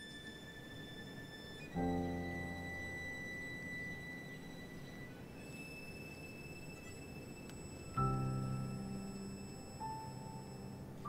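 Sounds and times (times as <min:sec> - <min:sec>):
quiet film score music: 0:00.0 - 0:11.0.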